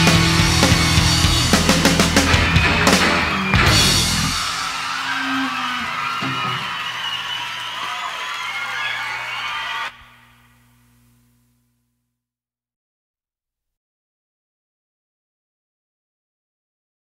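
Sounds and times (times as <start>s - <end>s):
rock band closing hit ringing: 0.0s - 7.2s
faint steady hum: 9.9s - 12.1s.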